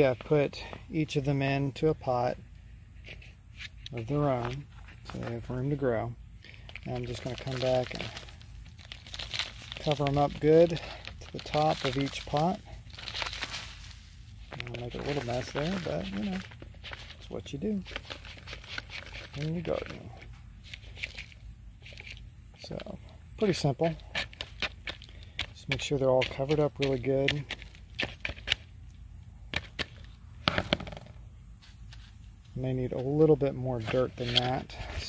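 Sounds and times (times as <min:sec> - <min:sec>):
potting soil crackles and taps: 0:03.8 - 0:08.2, 0:08.8 - 0:13.6, 0:14.5 - 0:21.2, 0:21.9 - 0:31.1.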